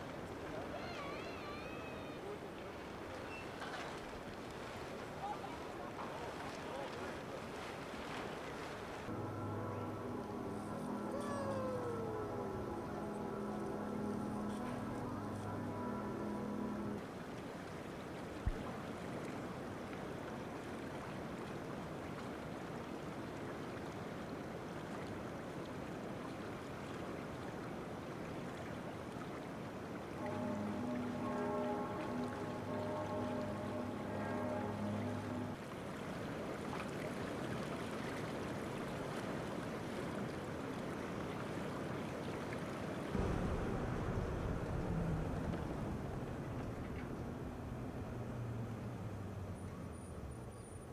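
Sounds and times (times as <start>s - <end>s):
river water rushing: 0.0s - 50.3s
held musical tones: 9.1s - 17.0s, 30.2s - 35.6s
deep low rumble: 43.2s - 49.1s.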